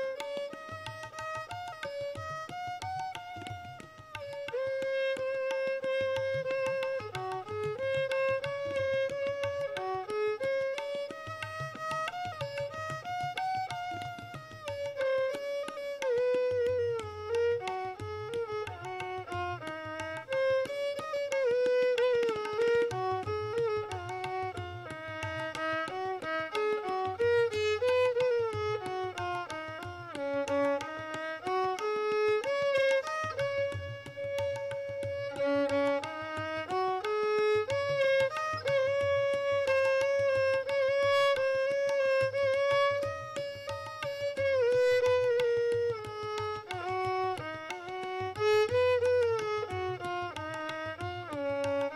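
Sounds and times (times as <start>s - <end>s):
tabla strokes: 0.0s - 51.9s
violin melody sliding between notes: 0.0s - 51.9s.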